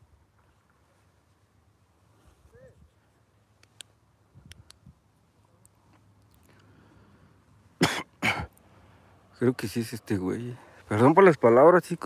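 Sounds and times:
person coughing: 7.8s - 8.5s.

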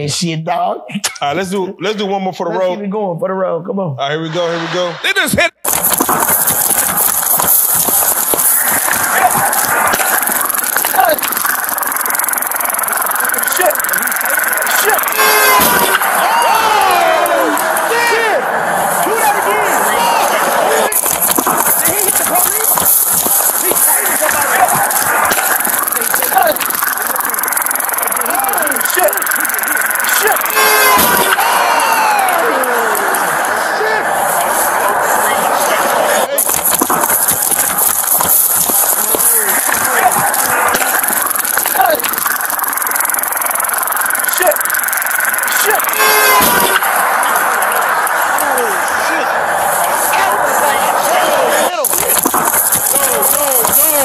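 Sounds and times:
indistinct voices: 1.0s - 54.0s
hissy distorted din: 4.0s - 54.0s.

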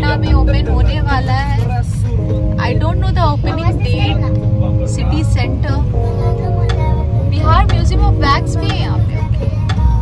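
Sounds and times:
vocal music with heavy bass: 0.0s - 10.0s.

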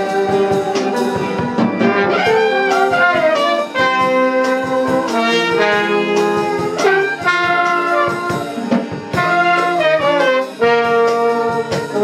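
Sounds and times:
drum hits: 0.0s - 12.0s
piano: 0.0s - 12.0s
saxophone: 0.0s - 12.0s
trombone: 0.0s - 12.0s
trumpets: 0.0s - 12.0s.

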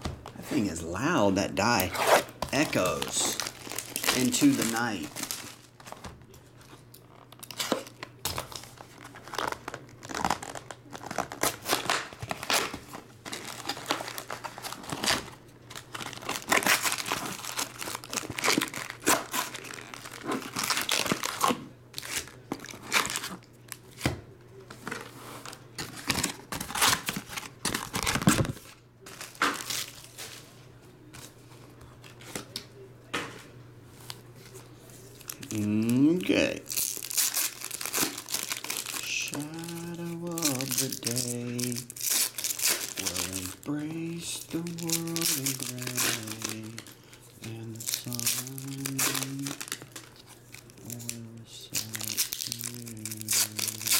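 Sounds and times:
foil card packs rustling: 0.0s - 32.6s, 34.0s - 53.9s
faint low hum: 0.0s - 53.9s
plastic shrink-wrap tearing: 1.8s - 6.0s, 6.6s - 24.0s, 24.9s - 30.4s, 35.1s - 53.9s.

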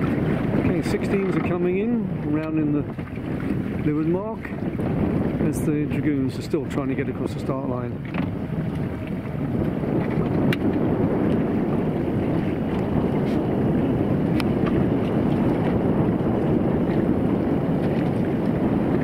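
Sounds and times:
wind noise on microphone: 0.0s - 19.0s.

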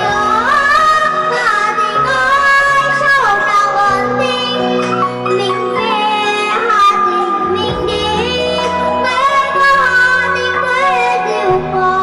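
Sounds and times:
girl singing into a microphone: 0.0s - 12.0s
instrumental backing music: 0.0s - 12.0s.

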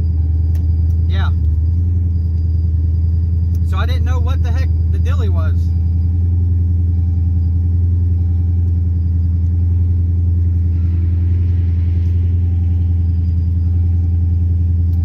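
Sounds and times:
engine idling deep drone: 0.0s - 15.0s.

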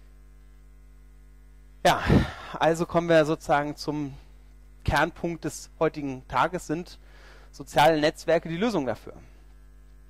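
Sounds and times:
electrical mains hum: 0.0s - 10.0s
man speaking: 1.8s - 4.2s, 4.9s - 7.0s, 7.6s - 9.3s.

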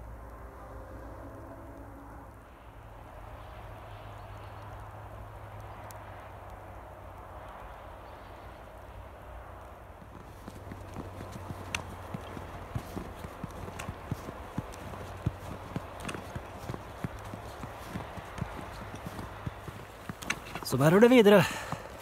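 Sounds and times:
footsteps crunching in snow: 10.0s - 22.0s.

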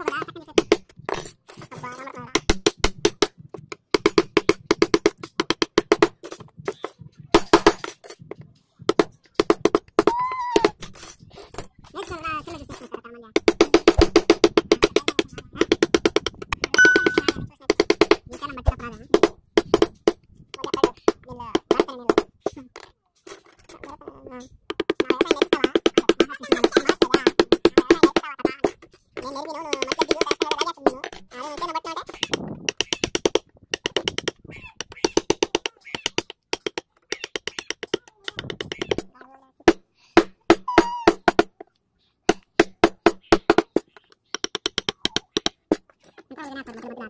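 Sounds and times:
mallet tapping carving gouge: 2.3s - 7.9s, 13.4s - 22.6s, 24.6s - 41.7s, 42.3s - 46.0s.

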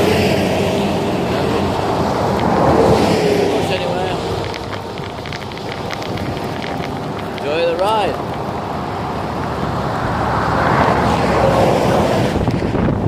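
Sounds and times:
road traffic rushing: 0.0s - 13.0s
wind on microphone: 0.0s - 13.0s.

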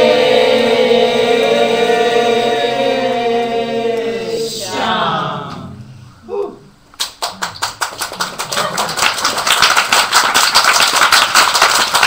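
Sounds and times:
voices chanting a held note: 0.0s - 6.7s.

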